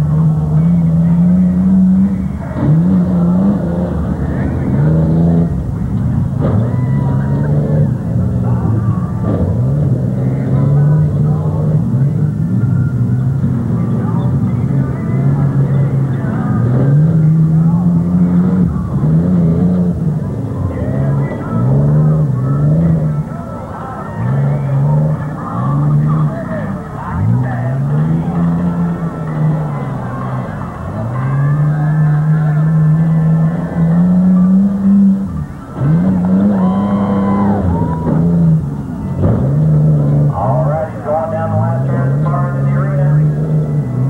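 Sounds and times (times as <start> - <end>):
pickup truck engine revving: 0.0 - 44.0.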